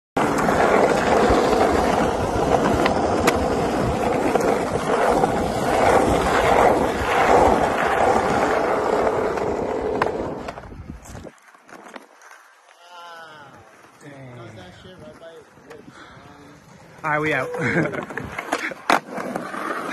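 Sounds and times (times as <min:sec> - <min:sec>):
skateboard wheels on rough asphalt: 0:00.2 - 0:19.9.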